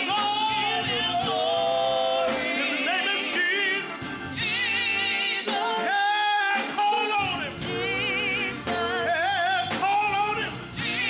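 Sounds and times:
choir singing with vibrato: 0:00.0 - 0:11.0
keyboard: 0:00.0 - 0:11.0.

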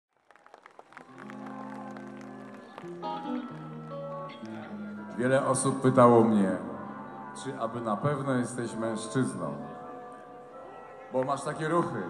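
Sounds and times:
audience clapping: 0:00.1 - 0:04.9
live band instrumental: 0:01.2 - 0:05.8.

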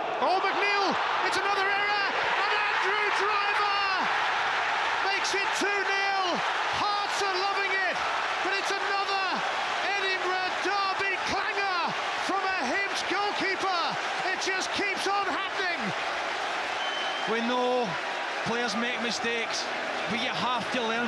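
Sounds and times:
crowd cheering and singing: 0:00.0 - 0:21.0.

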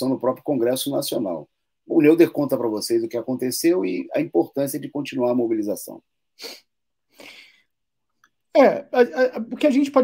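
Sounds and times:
man breathing: 0:06.4 - 0:07.8.

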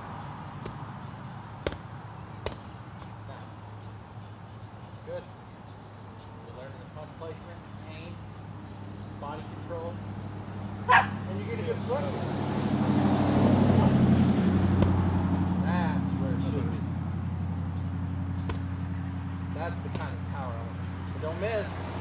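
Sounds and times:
car passing: 0:00.0 - 0:22.0.

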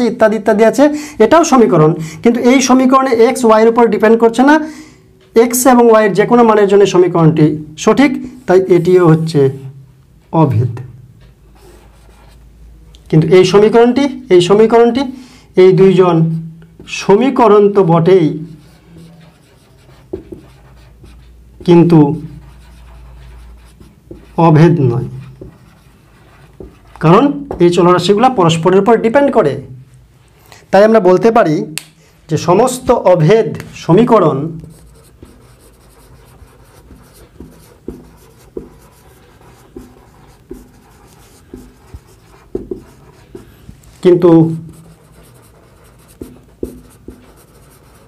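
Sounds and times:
marker scratching on whiteboard: 0:11.4 - 0:12.5, 0:18.4 - 0:27.8, 0:33.6 - 0:48.0.

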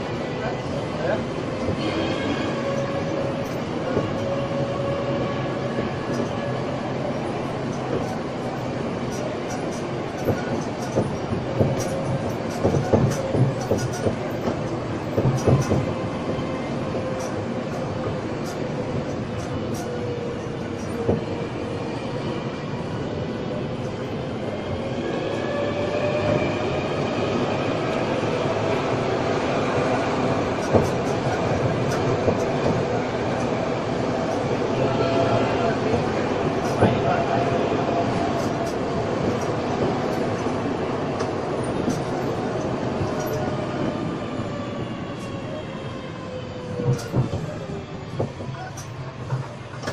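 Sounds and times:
road train humming and whining: 0:00.0 - 0:49.9.

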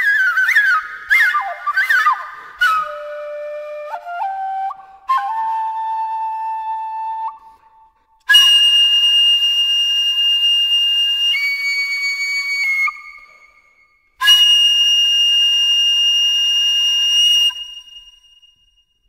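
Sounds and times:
unaccompanied flute: 0:00.0 - 0:18.8.

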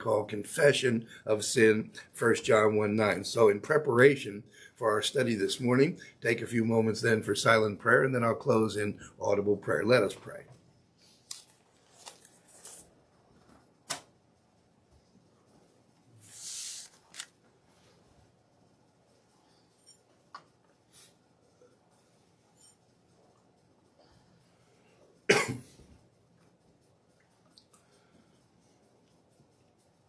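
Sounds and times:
faint rustles and clicks of handling: 0:10.2 - 0:13.8
man coughing: 0:25.3 - 0:25.8.

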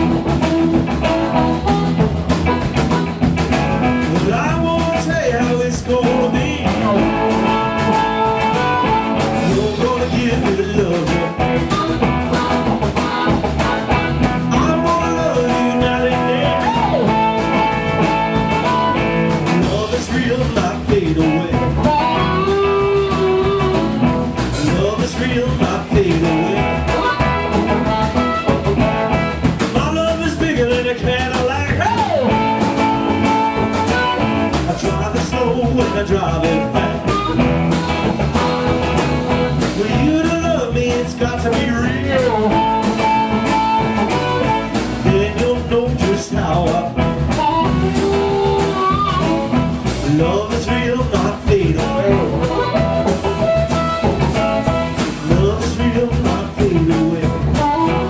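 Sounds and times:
harmonica lead line bending pitch: 0:00.0 - 0:58.0
live blues-rock band: 0:00.0 - 0:58.0.

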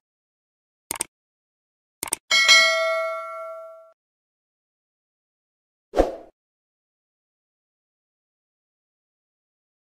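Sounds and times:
bell ding: 0:02.3 - 0:04.0.

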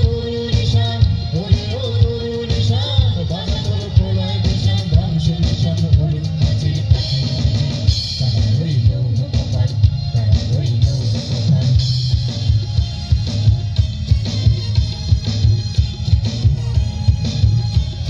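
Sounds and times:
live band music over loudspeakers: 0:00.0 - 0:18.0.

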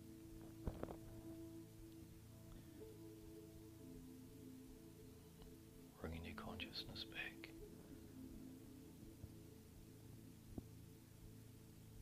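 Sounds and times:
soft ambient music: 0:00.0 - 0:12.0
faint whispering voice: 0:05.9 - 0:07.6.

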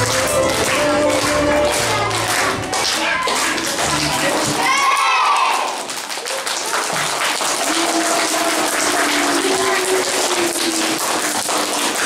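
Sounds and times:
children clapping: 0:00.0 - 0:12.0.

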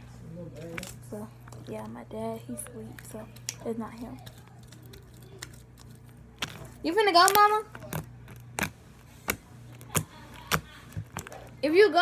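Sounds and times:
sticky slime pops: 0:06.4 - 0:11.3.

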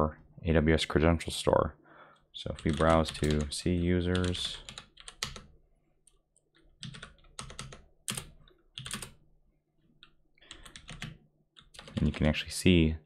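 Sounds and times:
typing on computer keyboard: 0:02.5 - 0:05.5, 0:06.6 - 0:09.2, 0:10.0 - 0:12.3.

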